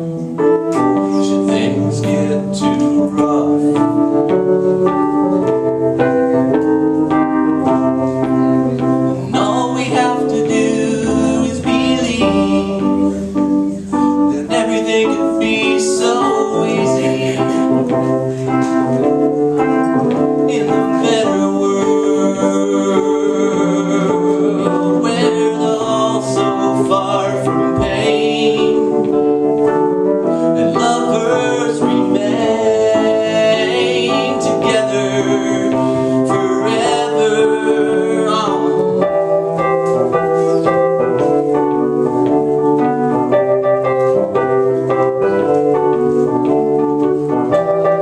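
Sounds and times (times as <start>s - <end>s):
electronic keyboard chords: 0.0s - 48.0s.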